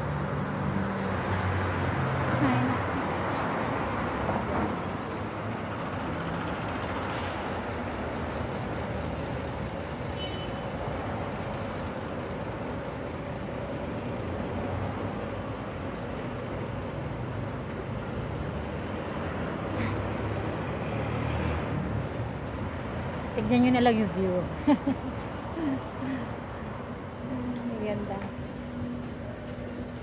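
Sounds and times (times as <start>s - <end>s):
street traffic noise: 0.0s - 30.0s.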